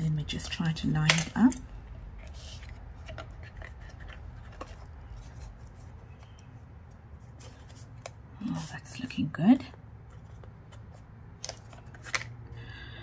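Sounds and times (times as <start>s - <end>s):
paper rustling: 2.2s - 6.4s.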